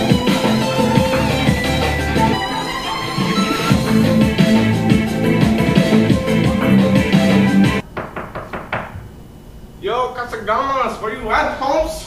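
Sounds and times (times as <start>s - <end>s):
quick knocks: 7.8s - 9.1s.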